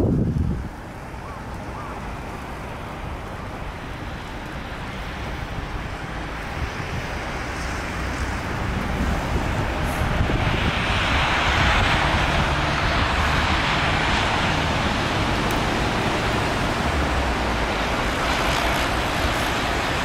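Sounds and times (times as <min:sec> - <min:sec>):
city traffic: 0:00.0 - 0:20.0.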